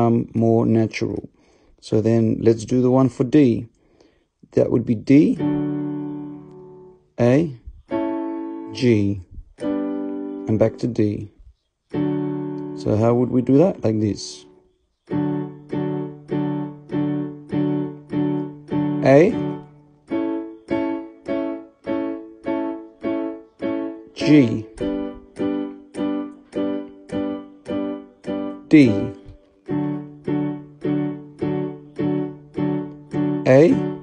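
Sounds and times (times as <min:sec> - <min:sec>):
electronic keyboard chords: 0:00.0 - 0:03.6, 0:04.5 - 0:34.0.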